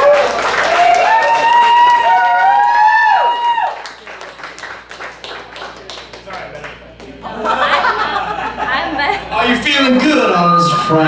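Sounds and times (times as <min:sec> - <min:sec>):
audience clapping and cheering: 0:00.0 - 0:07.2.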